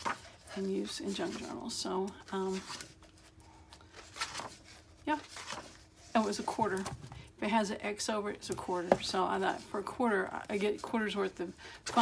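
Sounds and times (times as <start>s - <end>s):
book page turning: 0.0s - 6.9s.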